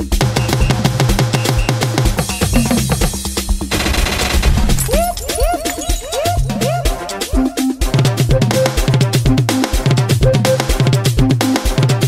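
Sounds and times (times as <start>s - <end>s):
afrobeat dance music: 0.0s - 3.7s, 4.9s - 12.0s
machine gun fire effect: 3.7s - 4.8s.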